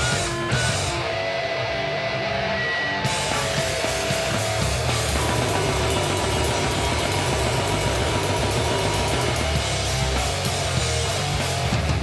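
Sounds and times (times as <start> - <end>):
fast drumming with cymbals: 0.0 - 1.1, 3.0 - 12.0
bass guitar: 0.0 - 12.0
distorted electric guitars: 0.0 - 12.0.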